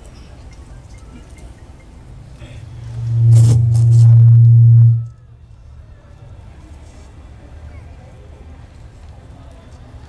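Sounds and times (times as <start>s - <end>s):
conch shell trumpet blown: 2.8s - 5.2s.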